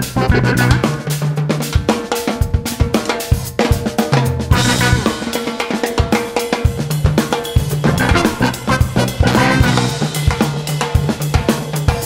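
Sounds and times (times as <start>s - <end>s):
electric bass: 0.0s - 1.2s, 4.5s - 5.2s, 7.8s - 10.0s
keyboard: 0.0s - 1.3s, 4.5s - 5.4s, 7.8s - 10.2s
drum kit: 0.0s - 12.0s.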